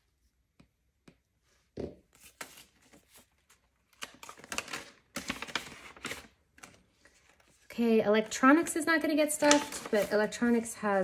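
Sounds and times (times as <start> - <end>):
paper rustling and crinkling: 2.2 - 7.8, 9.2 - 10.7.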